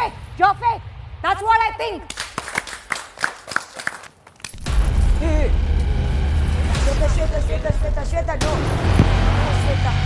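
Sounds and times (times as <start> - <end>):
hand clapping: 2.1 - 4.2.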